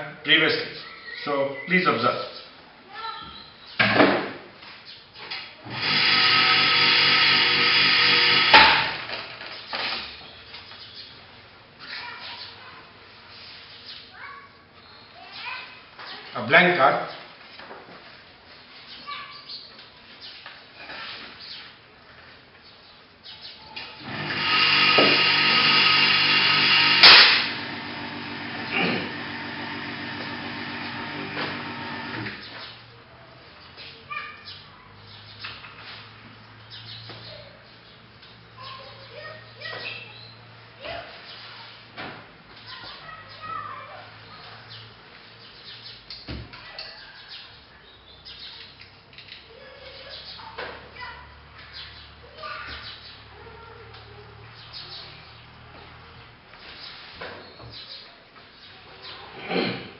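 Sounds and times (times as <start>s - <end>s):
target carrier motor running: 5.7s - 9.0s, 24.0s - 32.4s.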